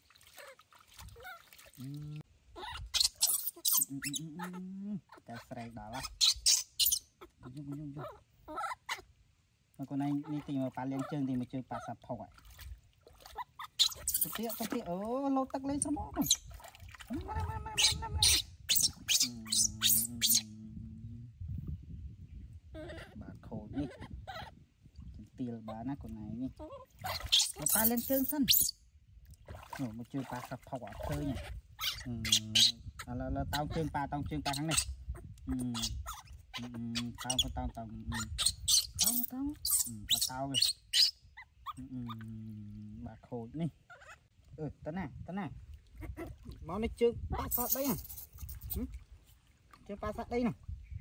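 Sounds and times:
water splashing: 0.0 - 2.3, 9.8 - 20.3, 25.0 - 28.7, 29.4 - 32.4
baby monkey squealing: 2.5 - 9.1, 13.3 - 14.7, 15.8 - 16.5, 17.5 - 20.5, 22.8 - 24.6, 26.6 - 28.8, 31.2 - 42.2, 43.9 - 44.2, 47.4 - 48.8
man talking: 3.9 - 6.2, 14.2 - 16.3, 23.2 - 24.1, 25.2 - 26.6, 29.8 - 34.8, 36.6 - 38.4, 41.8 - 43.8, 46.6 - 48.1, 49.8 - 50.6
person humming: 19.2 - 21.3.

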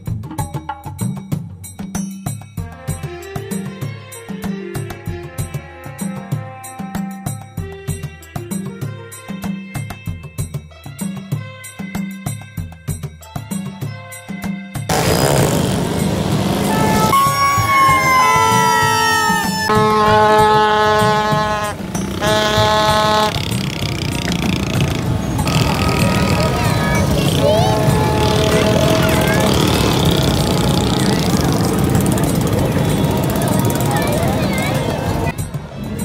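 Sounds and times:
street crowd: 14.8 - 36.0
loud horn blasts: 14.9 - 35.3
traffic noise: 14.9 - 36.0.

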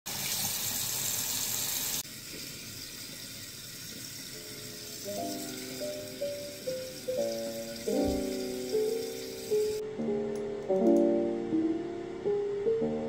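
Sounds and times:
tap water running into sink: 0.1 - 9.8
background music with held notes: 4.4 - 13.0.

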